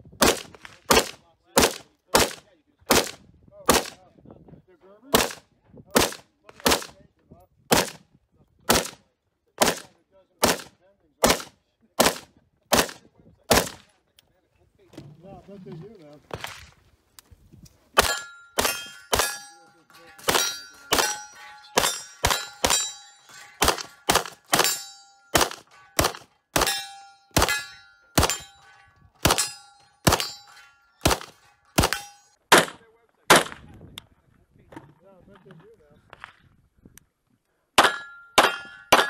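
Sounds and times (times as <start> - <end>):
pistol shots: 0.2 - 4.0, 5.1 - 5.4, 6.0 - 6.9, 7.7 - 8.0, 8.7 - 9.0, 9.6 - 13.8, 18.0 - 19.5, 20.1 - 28.6, 29.2 - 33.6
metallic ring of steel targets: 18.0 - 32.4, 37.8 - 39.0.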